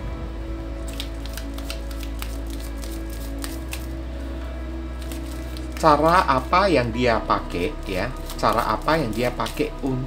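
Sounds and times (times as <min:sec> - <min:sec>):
slow music of low notes: 0:00.0 - 0:10.0
cards being shuffled: 0:00.8 - 0:04.0, 0:05.0 - 0:06.5, 0:07.8 - 0:10.0.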